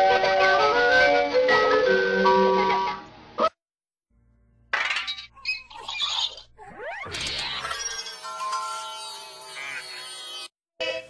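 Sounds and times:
squeaky chirping cartoon effects: 0:05.0 - 0:11.0.

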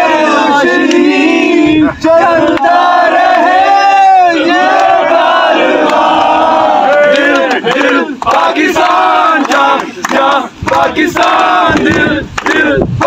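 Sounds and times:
men singing chanted chorus: 0:00.0 - 0:13.0
hand clapping: 0:06.9 - 0:12.7.

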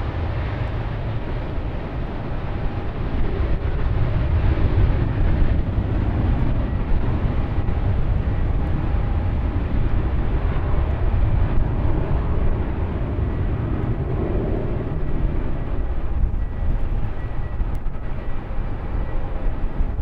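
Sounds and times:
distant jet engines rumbling: 0:00.0 - 0:20.0.

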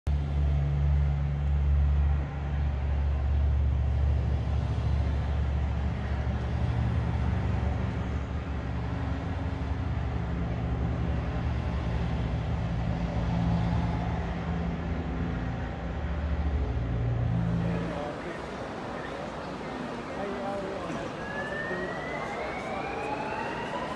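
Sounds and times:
faint city noise: 0:00.1 - 0:23.9.

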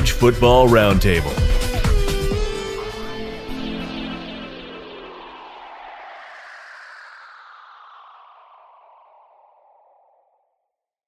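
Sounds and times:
intro music: 0:00.0 - 0:08.1
whoosh sliding down in pitch: 0:01.8 - 0:10.6.

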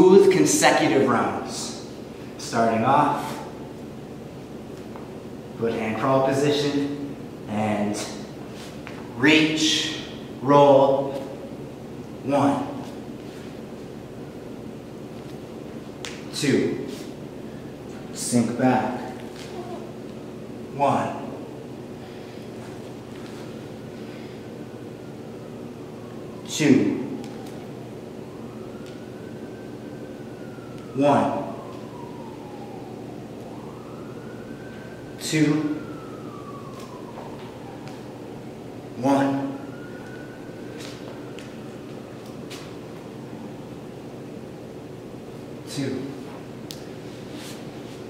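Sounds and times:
room noise hiss: 0:00.0 - 0:48.0.

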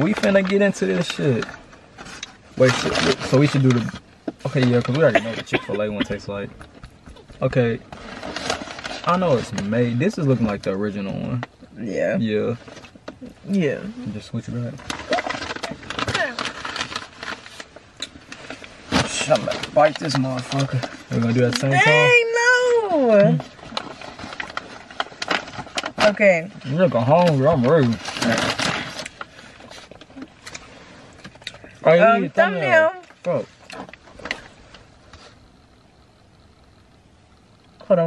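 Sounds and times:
paper bag and wrapper rustling: 0:00.0 - 0:06.8, 0:07.4 - 0:11.4, 0:12.2 - 0:34.9
faint steady hiss: 0:00.0 - 0:38.0
person speaking: 0:02.6 - 0:06.6, 0:19.0 - 0:23.5.

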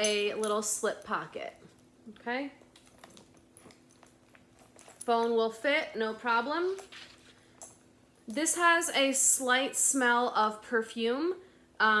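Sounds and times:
bag chain clicks: 0:02.7 - 0:05.4.

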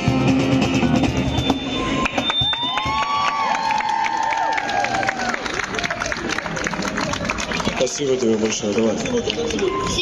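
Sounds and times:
high whistle: 0:01.0 - 0:03.1
crowd cheering: 0:01.0 - 0:10.0
crowd clapping: 0:01.9 - 0:10.0.

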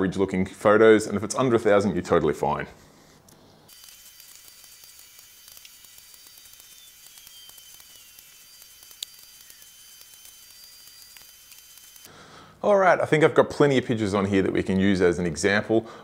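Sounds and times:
sharp click: 0:03.3 - 0:12.1
falling whistle: 0:06.3 - 0:11.2.

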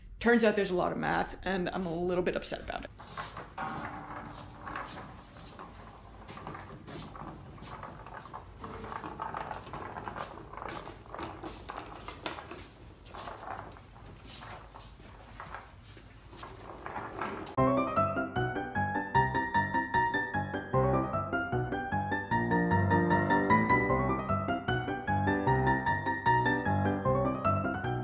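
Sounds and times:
knocks and clatter: 0:02.9 - 0:17.6
piano music: 0:17.6 - 0:28.0.

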